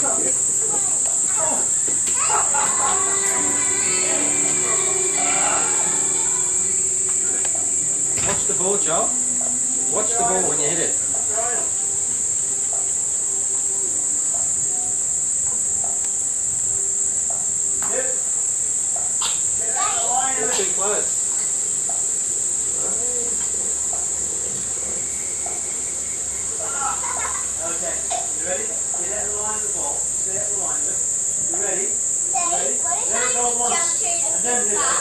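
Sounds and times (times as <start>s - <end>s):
voices: 0.0s - 17.1s, 19.2s - 35.0s
insects chorus: 0.0s - 35.0s.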